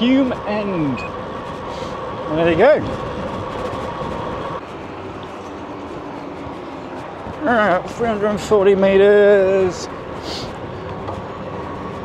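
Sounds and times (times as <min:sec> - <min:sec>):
bike tyres rushing on tarmac: 0:00.0 - 0:12.0.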